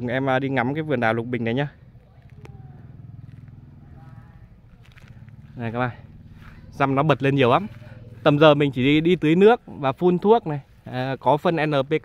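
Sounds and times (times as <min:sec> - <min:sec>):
low engine-like hum: 0:00.0 - 0:11.5.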